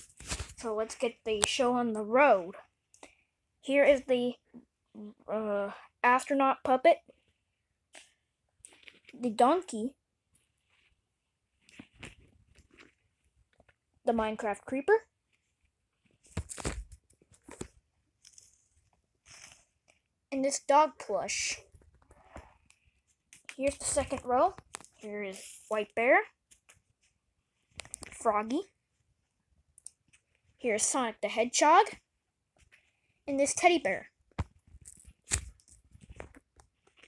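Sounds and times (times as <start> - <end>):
rustling of stuffed toys and bedding: 0.0 - 4.9, 7.0 - 9.3, 10.0 - 14.3, 15.1 - 20.3, 34.3 - 37.0
plush toys rustling: 10.3 - 13.8.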